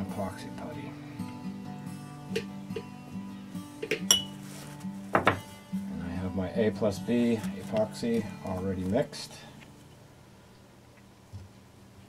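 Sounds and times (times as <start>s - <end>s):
soft background music: 0.0s - 10.2s
sharp metallic clink: 4.1s - 4.3s.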